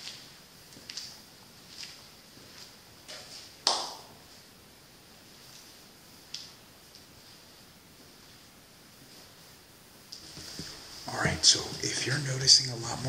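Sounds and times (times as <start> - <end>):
footsteps scuffing: 0.0 - 4.5, 10.1 - 12.3.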